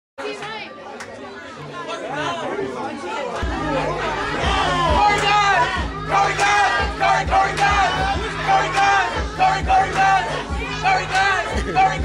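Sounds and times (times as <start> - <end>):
crowd talking and calling out: 0.2 - 12.0
bass-heavy beat: 3.4 - 12.0.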